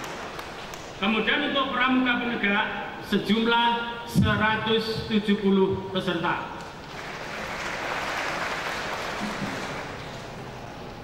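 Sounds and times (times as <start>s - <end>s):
audience applauding: 0.0s - 1.0s, 6.8s - 10.5s.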